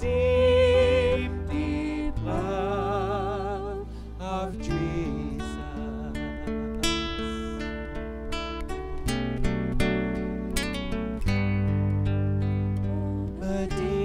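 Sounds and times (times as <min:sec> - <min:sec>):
acoustic guitar chords: 0:00.0 - 0:14.0.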